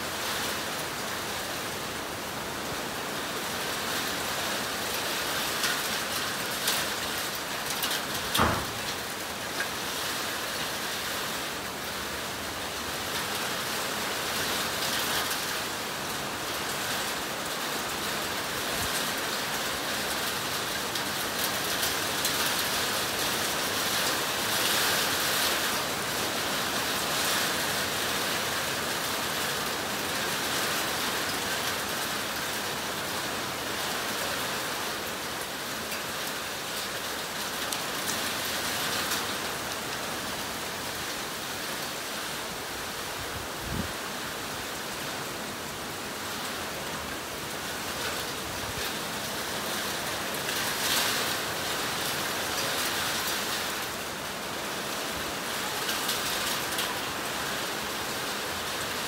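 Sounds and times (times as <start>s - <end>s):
heavy wind-driven rain: 0.0s - 59.0s.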